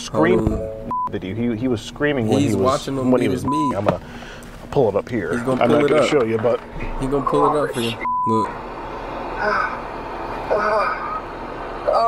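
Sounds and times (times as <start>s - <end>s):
car cabin hum: 0.0s - 1.5s, 3.4s - 12.0s
censor bleep: 0.3s - 1.2s, 7.2s - 8.5s.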